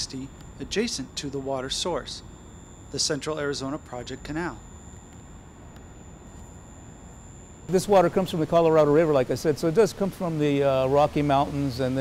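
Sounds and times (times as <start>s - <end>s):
high-pitched electronic whine: 0.0s - 12.0s.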